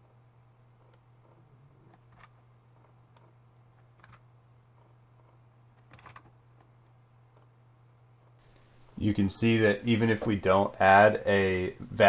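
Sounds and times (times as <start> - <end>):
steady low hum: 0.0 - 12.0
keyboard keystrokes: 5.8 - 6.3.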